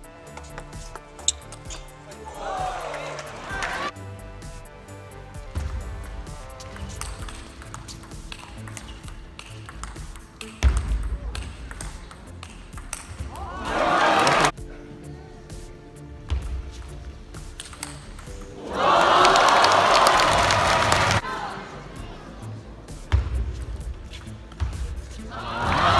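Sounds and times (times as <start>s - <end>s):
background music: 0.0s - 25.9s
people shouting: 2.0s - 3.9s, 13.2s - 14.5s, 18.5s - 22.2s, 25.2s - 25.9s
table tennis ball clicking: 6.7s - 13.4s, 17.6s - 18.4s.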